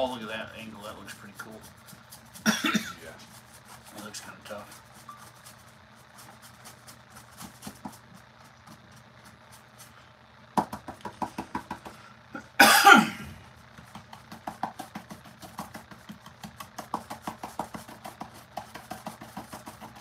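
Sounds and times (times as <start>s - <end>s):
steady low hum: 0.0s - 20.0s
person coughing: 2.4s - 3.1s, 12.3s - 13.4s
paintbrush tapping: 10.6s - 12.0s, 13.7s - 20.0s.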